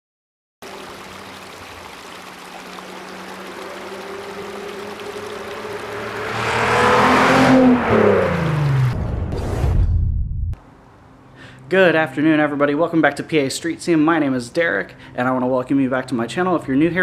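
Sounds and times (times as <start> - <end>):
car engine driving past: 2.2 - 9.8.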